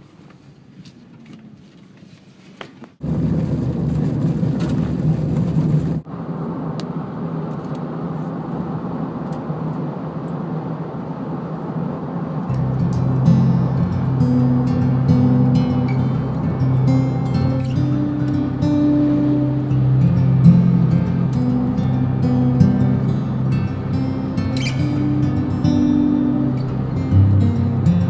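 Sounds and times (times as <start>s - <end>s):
vehicle road and tyre noise: 0.0s - 28.0s
background music: 12.5s - 28.0s.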